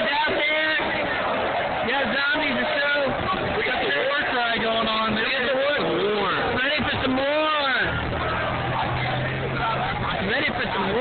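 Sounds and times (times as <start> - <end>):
crowd chatter: 0.0 - 11.0
vehicle engine humming: 0.0 - 11.0.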